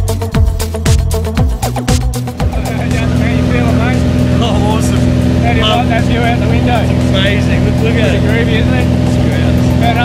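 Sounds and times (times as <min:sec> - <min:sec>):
people talking indistinctly: 0:02.2 - 0:10.0
small plane engine drone: 0:02.3 - 0:10.0.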